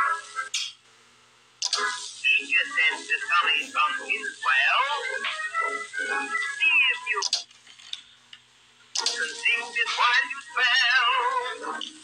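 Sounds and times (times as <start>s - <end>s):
voice over music: 1.8s - 7.3s, 9.0s - 12.0s.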